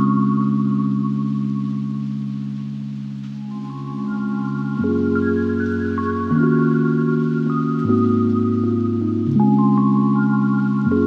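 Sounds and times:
held chord of steady tones: 0.0 - 11.0.

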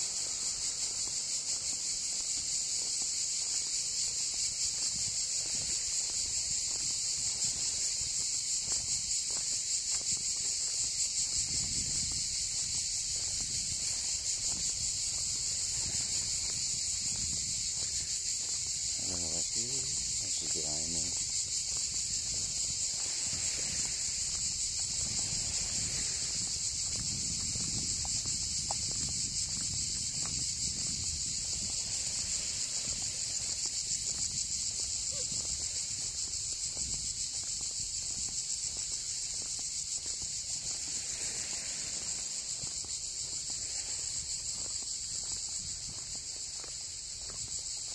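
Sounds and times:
cicadas buzzing: 0.0 - 47.9
footsteps on road: 0.0 - 47.9.

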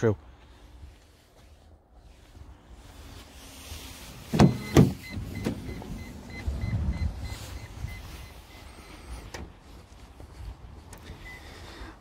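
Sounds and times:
rapid electronic warning beeps: 4.5 - 9.1.

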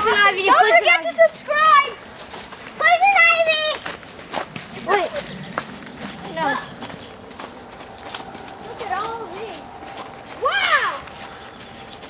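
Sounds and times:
footsteps on dirt trail: 0.0 - 12.0
children calling out: 8.4 - 11.4.

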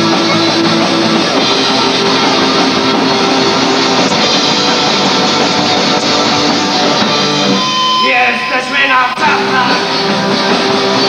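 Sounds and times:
rock band playing live: 0.0 - 11.0.

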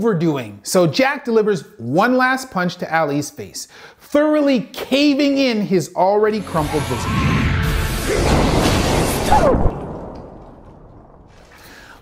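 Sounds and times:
low rumbling punch impact: 7.5 - 11.9.

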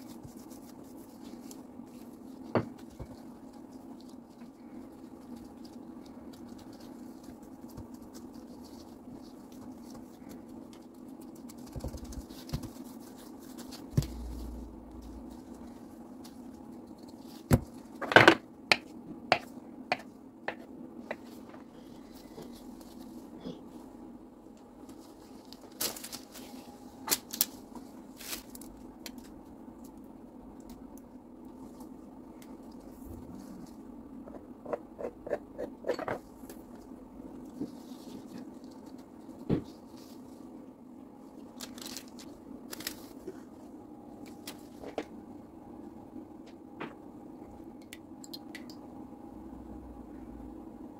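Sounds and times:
hands handling dough: 0.0 - 18.1
steady low hum: 0.0 - 50.9.

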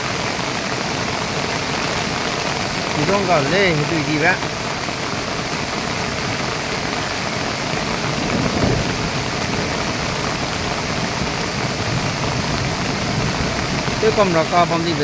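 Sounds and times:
heavy rain falling: 0.0 - 15.0
river rushing: 0.0 - 15.0.

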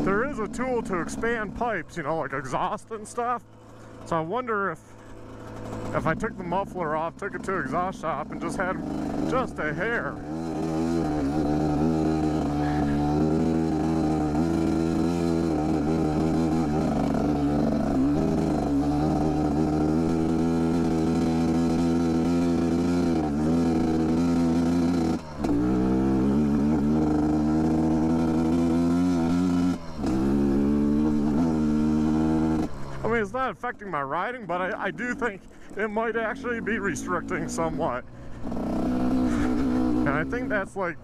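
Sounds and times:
dirt bike engine under load: 0.0 - 41.0.

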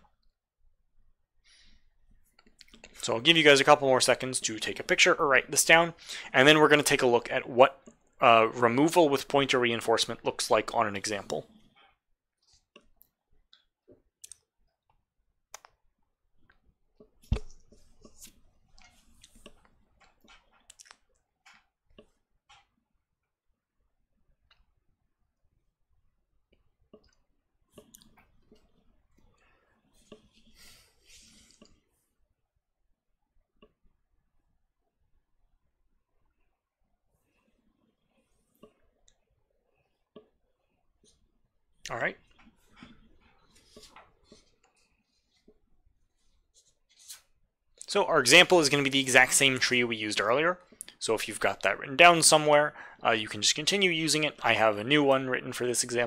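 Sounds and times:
person speaking: 3.0 - 11.5, 41.9 - 42.2, 47.8 - 56.0.

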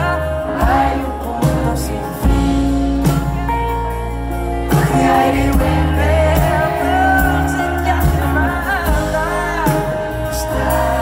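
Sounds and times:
keyboard chords: 0.0 - 11.0
man singing into a microphone: 0.0 - 11.0.

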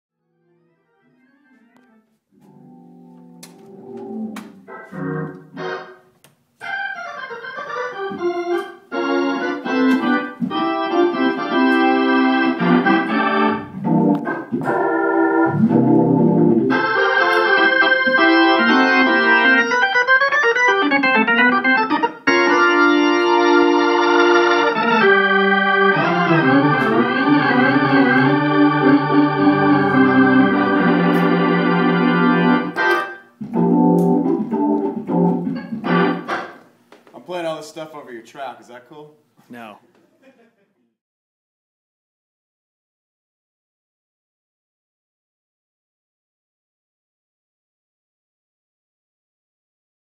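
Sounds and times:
organ playing sustained chords: 0.5 - 36.5.

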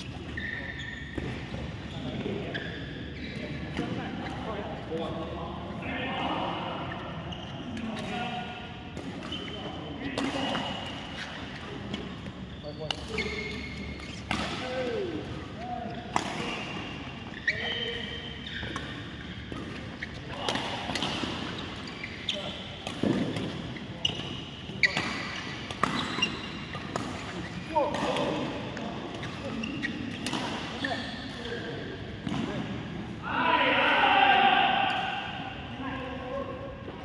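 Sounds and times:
shoes squeaking on court: 0.0 - 5.1, 6.8 - 8.3, 9.0 - 32.3
racket hitting shuttlecock: 18.6 - 21.9, 24.8 - 28.5.

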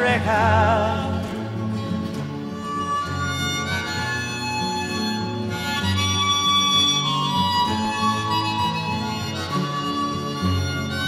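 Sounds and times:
harmonica playing: 2.4 - 11.0.

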